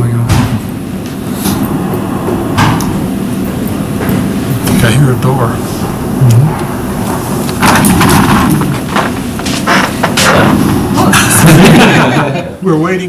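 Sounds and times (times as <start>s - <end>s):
rustling knocks: 7.6s - 10.7s
sharp thumps: 7.6s - 10.9s.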